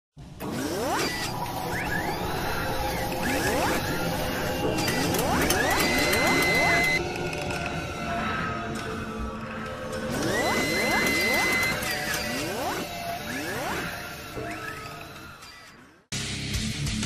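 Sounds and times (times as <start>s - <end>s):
busy mechanical background: 0.2s - 16.1s
mechanical whirs rising in pitch: 0.3s - 7.1s, 9.9s - 16.1s.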